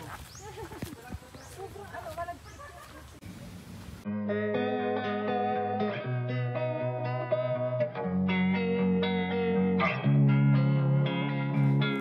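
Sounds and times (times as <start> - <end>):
people talking: 0.0 - 3.5
footsteps on dirt path: 0.0 - 4.0.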